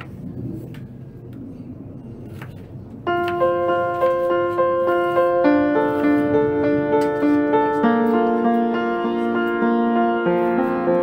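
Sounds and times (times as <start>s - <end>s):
music of held notes: 3.0s - 11.0s.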